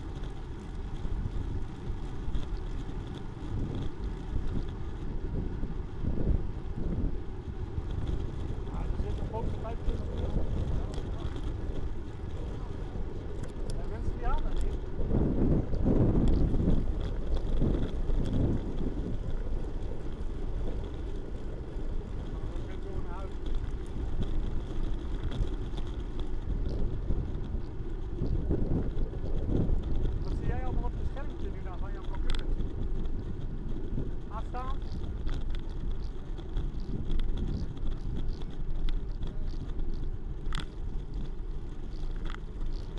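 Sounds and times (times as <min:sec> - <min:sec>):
bike tyres rumbling on asphalt: 0:00.0 - 0:42.9
wind buffeting microphone: 0:00.0 - 0:42.9.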